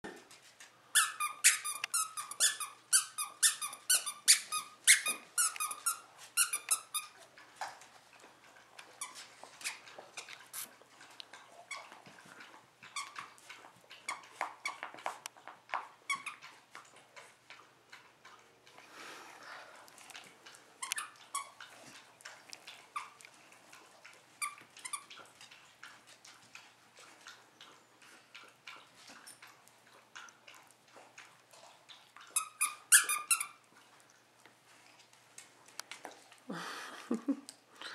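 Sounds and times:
dog toy squeaking: 0:01.0 - 0:07.1, 0:32.4 - 0:33.6.

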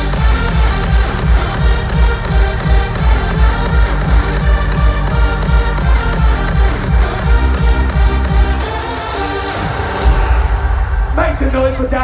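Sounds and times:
heavy kick drum pounding: 0:00.0 - 0:08.6
happy hardcore dance music: 0:00.0 - 0:12.0.

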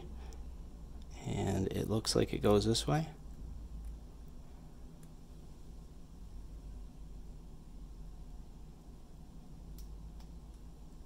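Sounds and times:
room hum: 0:00.0 - 0:11.0.

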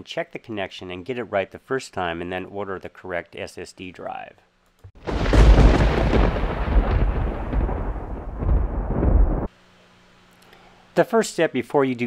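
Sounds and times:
deep rumbling noise: 0:05.0 - 0:09.5.

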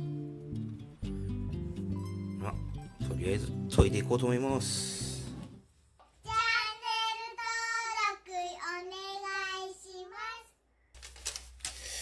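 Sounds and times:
child singing: 0:06.2 - 0:10.6.

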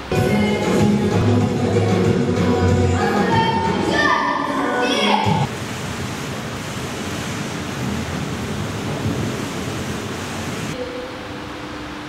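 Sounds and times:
steady rushing noise: 0:00.0 - 0:10.8
room hum: 0:00.0 - 0:12.0.

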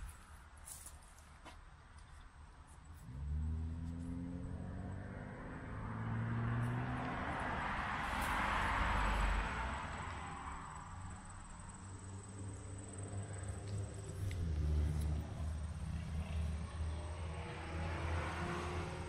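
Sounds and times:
low traffic rumble: 0:00.0 - 0:19.0
vehicle approaching: 0:02.8 - 0:19.0
car passing: 0:03.0 - 0:19.0.

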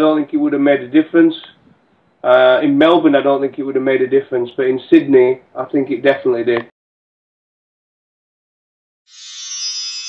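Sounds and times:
shimmering chime-like jingle tone: 0:09.1 - 0:10.0.

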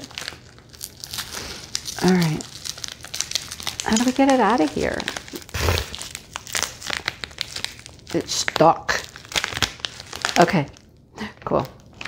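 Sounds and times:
plastic pouch crinkling: 0:00.0 - 0:11.0.

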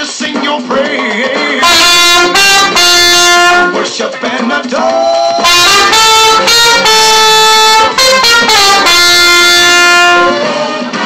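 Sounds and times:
trumpet playing slow melody: 0:01.6 - 0:03.9, 0:05.4 - 0:10.8.

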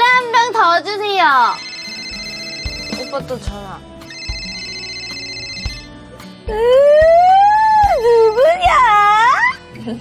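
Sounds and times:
background music: 0:00.0 - 0:10.0
smartphone alarm ringing: 0:01.5 - 0:06.0.

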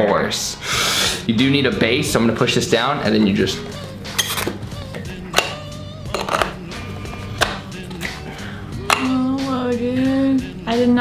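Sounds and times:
music with low bass line: 0:03.1 - 0:11.0.

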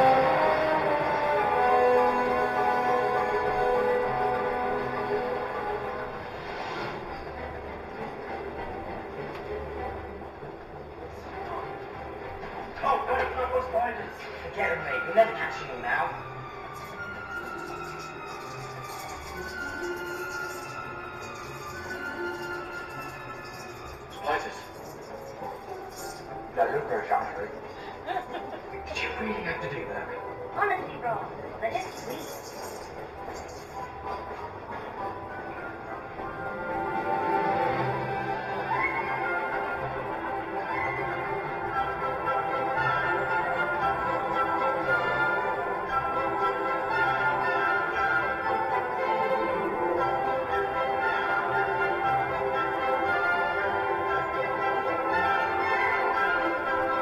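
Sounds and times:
low train rumble: 0:00.0 - 0:32.2, 0:32.9 - 0:52.8
soundtrack music: 0:00.0 - 0:57.0.

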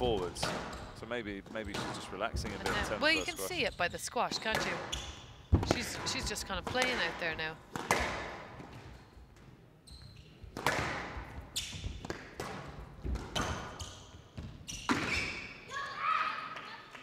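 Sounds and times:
ball hitting court walls: 0:04.4 - 0:09.5, 0:10.4 - 0:15.4
squash racket strikes: 0:04.5 - 0:09.5, 0:10.4 - 0:15.4.

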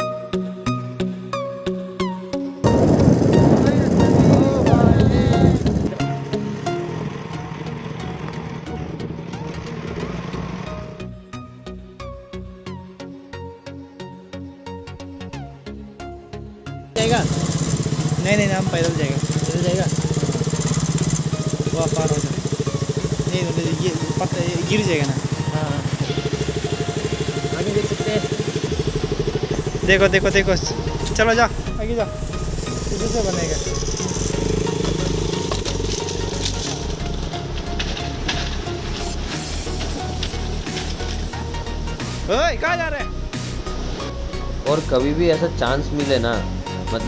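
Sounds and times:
motorcycle riding on dirt road: 0:02.6 - 0:11.0, 0:17.0 - 0:42.3
background music with beat: 0:18.2 - 0:47.0.

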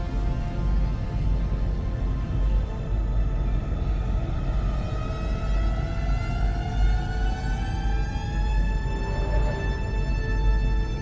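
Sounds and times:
rising synth tone: 0:07.0 - 0:10.4.

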